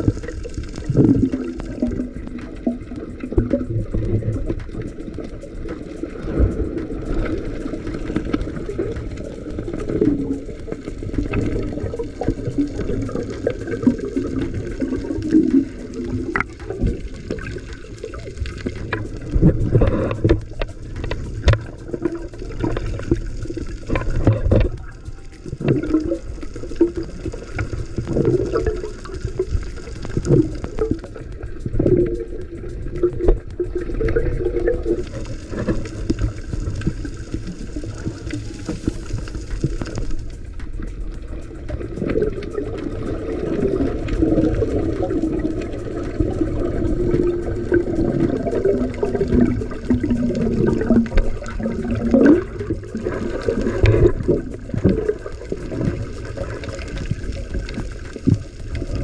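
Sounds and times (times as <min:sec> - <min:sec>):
bubbling: 0:00.0 - 0:59.0
scattered clicks: 0:00.0 - 0:59.0
underwater rumble of moving water: 0:00.0 - 0:59.0.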